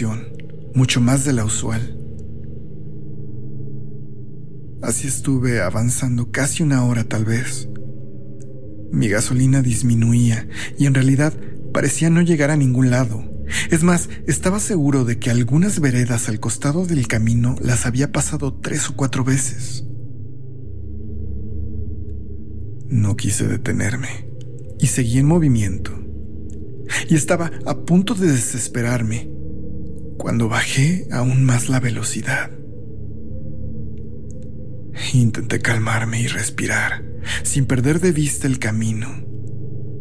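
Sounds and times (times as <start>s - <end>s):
dark ambient drone music: 0.0s - 40.0s.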